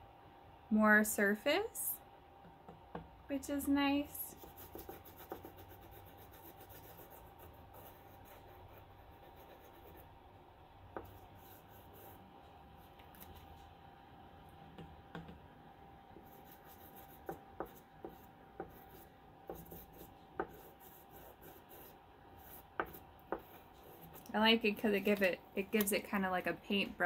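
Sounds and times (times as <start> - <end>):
chalk scratching on paper: 4.3 - 10.0, 11.0 - 12.2, 16.2 - 24.2
chalk tapping on paper: 4.3 - 10.0, 10.9 - 12.1, 16.2 - 24.2.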